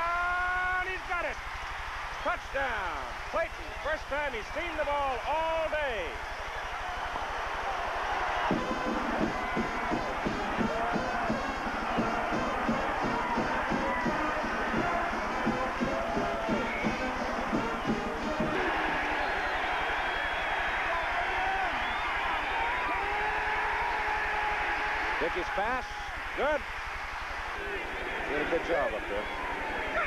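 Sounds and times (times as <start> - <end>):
crowd cheering: 0.0 - 30.0.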